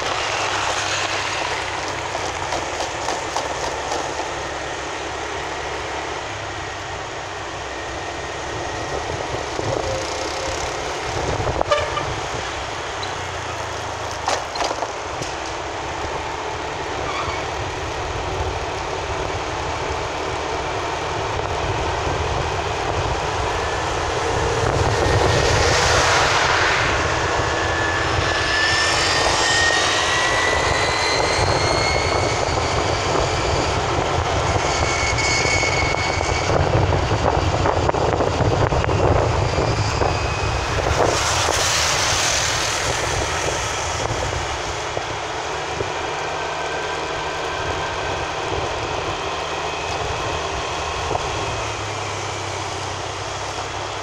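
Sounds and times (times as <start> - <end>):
car road and engine noise: 0.0 - 54.0
faint rising whine: 17.6 - 54.0.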